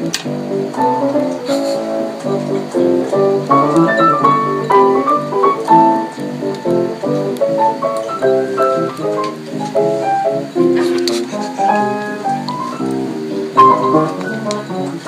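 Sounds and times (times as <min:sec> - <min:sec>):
jazz piano: 0:00.0 - 0:15.0.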